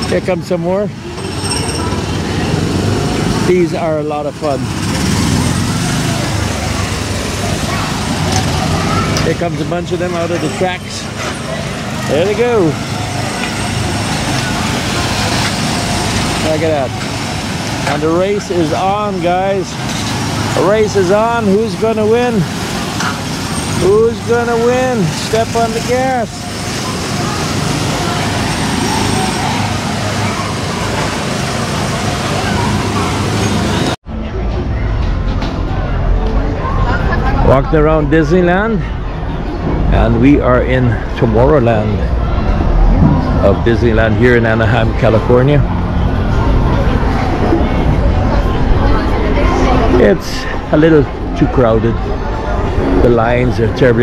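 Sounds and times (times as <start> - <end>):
small gasoline engines running: 0.0 - 34.0
faint voices: 0.0 - 54.0.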